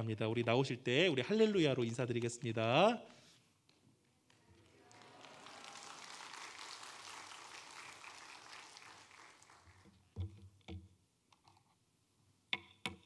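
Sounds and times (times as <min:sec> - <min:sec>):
congregation applauding: 0:04.3 - 0:10.1.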